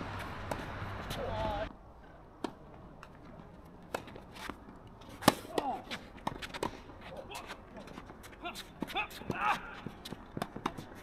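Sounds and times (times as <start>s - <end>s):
racket hitting tennis ball: 0.2s - 1.4s, 3.9s - 7.9s, 8.5s - 11.0s.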